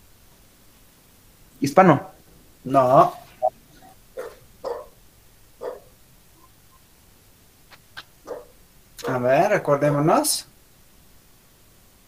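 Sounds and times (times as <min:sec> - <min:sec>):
dog barking: 0:03.8 - 0:05.0, 0:05.6 - 0:06.0, 0:08.2 - 0:08.6.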